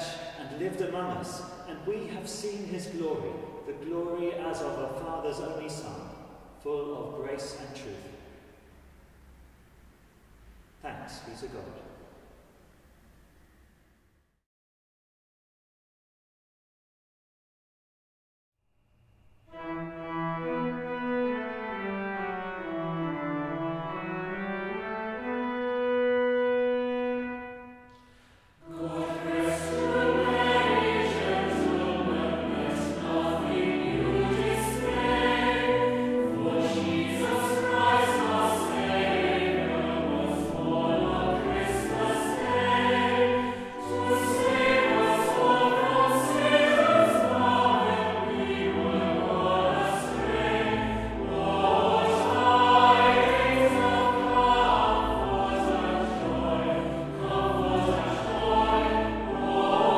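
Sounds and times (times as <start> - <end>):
choir singing a carol: 0.0 - 8.4, 19.5 - 59.9
organ playing: 19.5 - 27.9, 28.6 - 59.9.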